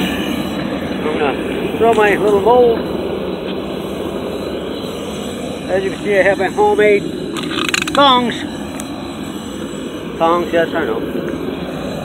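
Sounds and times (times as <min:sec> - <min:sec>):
propane burner roaring: 0:00.0 - 0:12.0.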